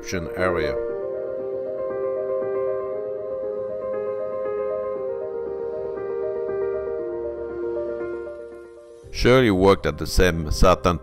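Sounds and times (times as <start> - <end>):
soft slow new-age music: 0.0 - 11.0.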